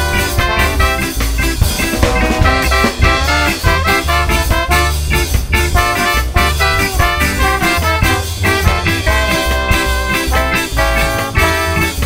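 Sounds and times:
bass line: 0.0 - 12.0
drum kit: 0.0 - 12.0
guitar: 0.0 - 12.0
horn section riffs: 0.0 - 12.0.

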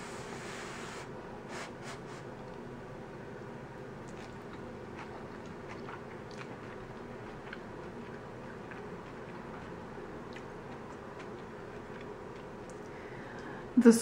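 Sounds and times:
low room hum: 0.0 - 14.0
person chewing: 4.0 - 13.5.

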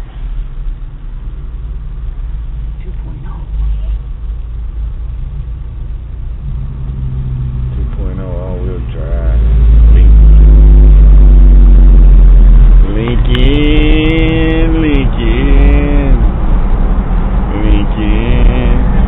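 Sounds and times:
vehicle engine idling and accelerating: 0.0 - 19.0.

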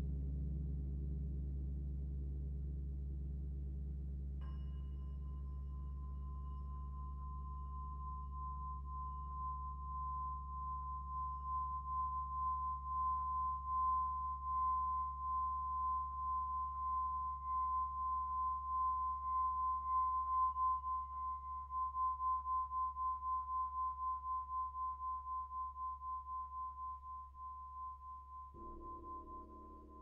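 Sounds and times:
singing bowl tone: 4.4 - 30.0.

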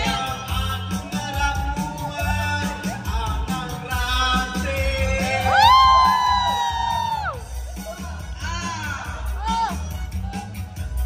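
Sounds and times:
karaoke backing track: 0.0 - 11.0
person whooping high: 5.3 - 7.4.

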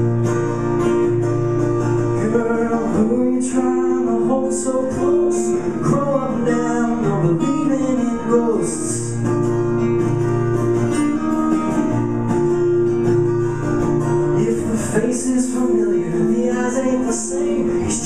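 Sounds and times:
two guitars playing: 0.0 - 18.0.

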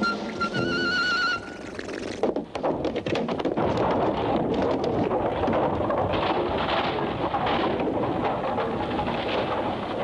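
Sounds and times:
clattering crash and rumble: 2.0 - 10.0.

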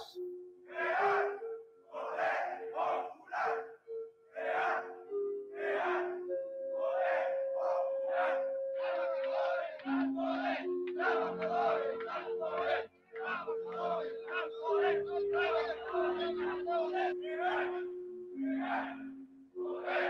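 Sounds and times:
held musical notes: 0.0 - 20.0
crowd chanting slogan: 0.7 - 3.8, 4.4 - 20.0.

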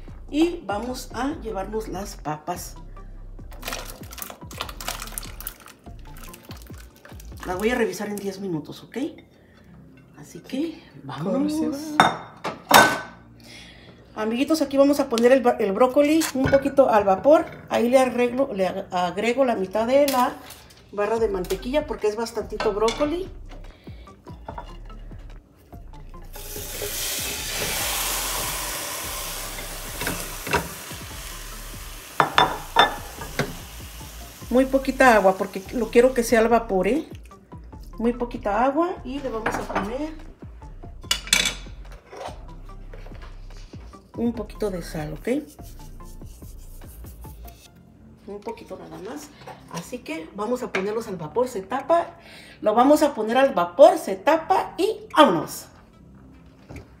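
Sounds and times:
broccoli sizzling in butter: 26.3 - 36.0.

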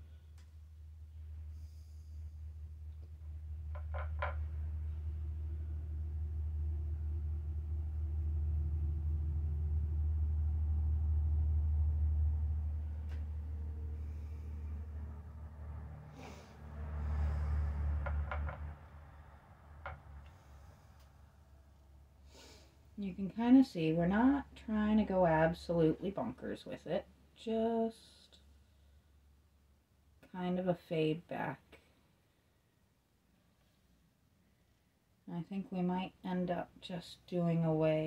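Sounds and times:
low rumble: 0.6 - 22.2.

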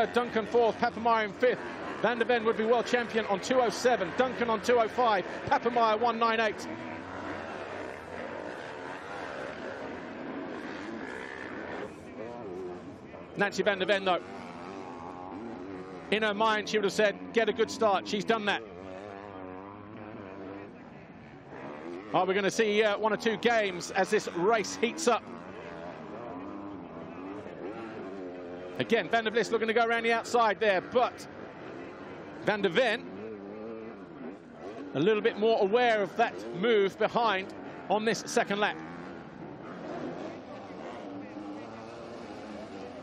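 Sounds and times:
motocross bike engines revving: 0.0 - 43.0.

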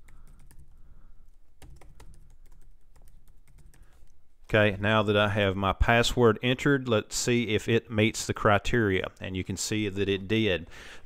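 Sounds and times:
computer keyboard keys clicking: 0.0 - 0.7, 1.6 - 4.1.

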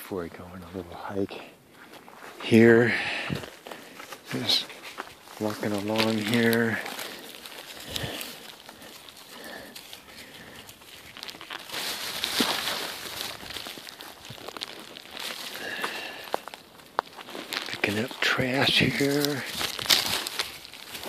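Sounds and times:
light footsteps: 0.4 - 21.0
plastic bag crinkling: 3.4 - 21.0.

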